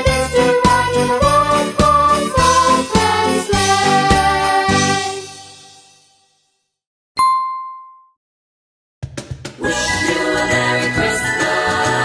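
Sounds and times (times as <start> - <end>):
bright bell ding: 7.2 - 8.2.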